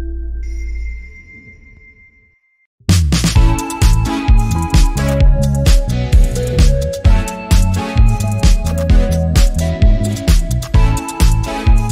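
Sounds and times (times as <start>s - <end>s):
electronic chime tone: 0.0s - 2.6s
low music: 2.9s - 11.9s.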